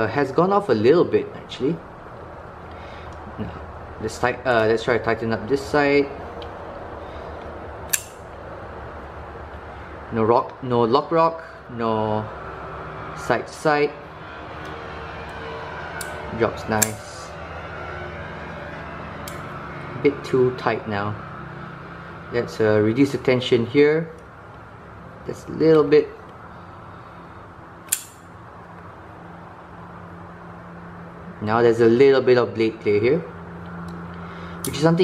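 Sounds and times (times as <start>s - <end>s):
room hum: 0.0s - 35.0s
folding knife ticks: 7.9s - 8.2s, 27.9s - 28.2s
knife blade click: 7.9s - 8.2s.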